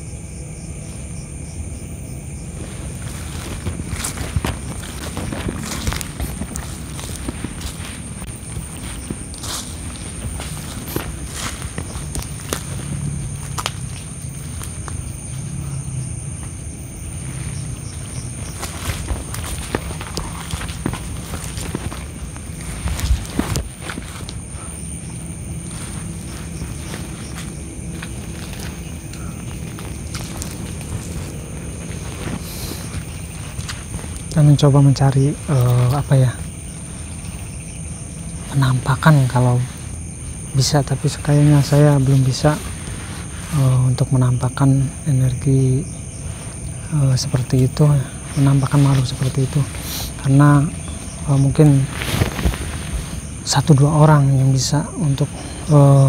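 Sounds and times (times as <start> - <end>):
footsteps through undergrowth: 2.4 - 56.0.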